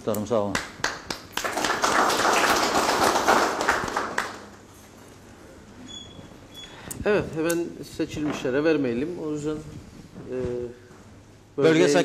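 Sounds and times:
audience applauding: 0:00.8 - 0:04.6.

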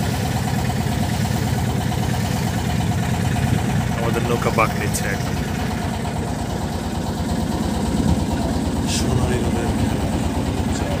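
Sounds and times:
boat engine running: 0:00.0 - 0:11.0.

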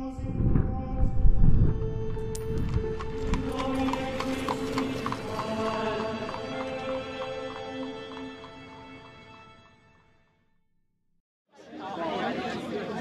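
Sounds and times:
horse hooves clip-clopping: 0:01.7 - 0:09.9.

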